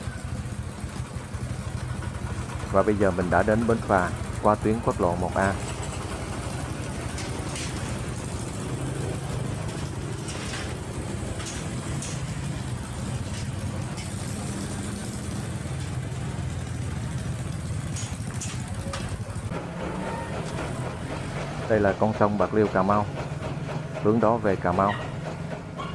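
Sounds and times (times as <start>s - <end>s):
boat engine idling: 0.0s - 25.9s
motorbike engines: 0.0s - 25.9s.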